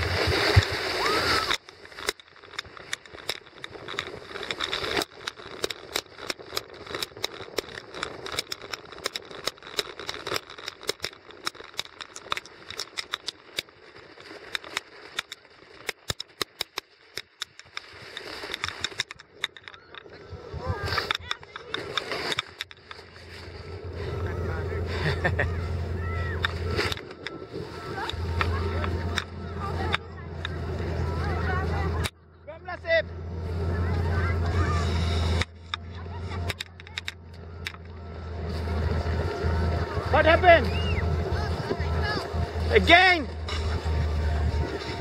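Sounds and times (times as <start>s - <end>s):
snow tube sliding on snow: 0.0s - 15.9s, 20.1s - 36.5s, 38.2s - 45.0s.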